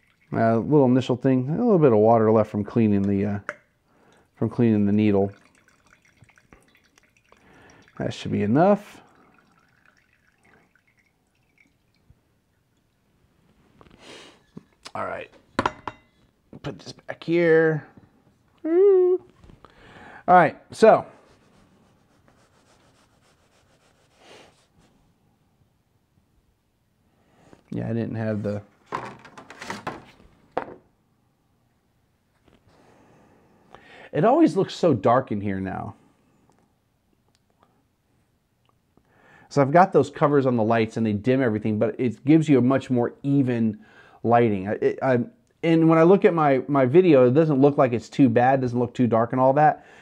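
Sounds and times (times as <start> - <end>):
faint wine drips: 0.0 - 0.7, 3.0 - 13.1.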